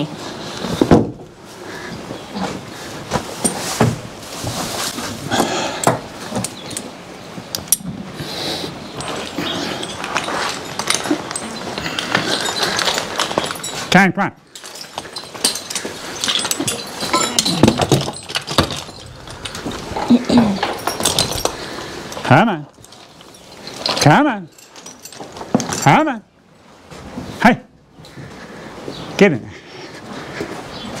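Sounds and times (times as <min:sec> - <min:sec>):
hay rustling and knocks: 0:02.4 - 0:05.3
harness hardware clinking: 0:03.1 - 0:04.3, 0:05.4 - 0:26.8.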